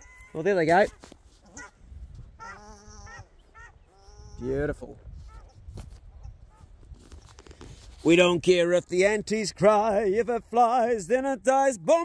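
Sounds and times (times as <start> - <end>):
wild ducks calling: 2.4 - 4.5.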